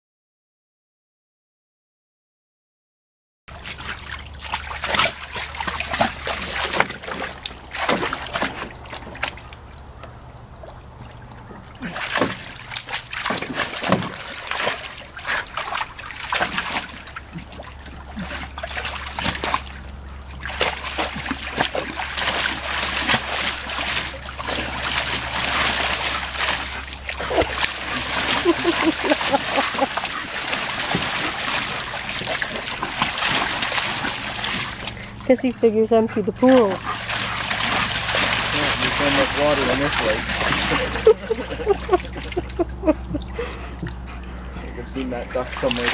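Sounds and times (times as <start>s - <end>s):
dog splashing in water: 3.5s - 45.9s.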